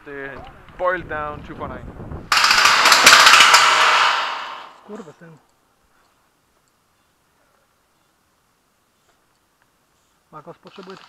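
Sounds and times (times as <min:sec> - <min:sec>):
airsoft gun rapid fire: 0:02.3 - 0:04.8.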